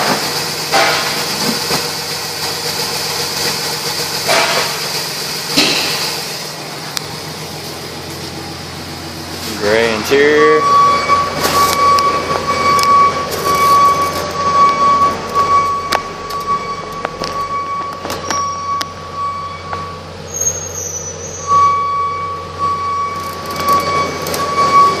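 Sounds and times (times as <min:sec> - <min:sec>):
dashboard warning chime: 0:09.6 - 0:20.4, 0:21.4 - 0:25.0.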